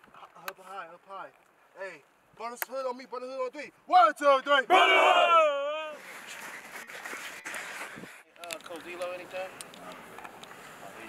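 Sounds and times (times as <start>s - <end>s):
open-air hubbub: 0.0s - 11.0s
team shouting in unison: 3.9s - 6.0s.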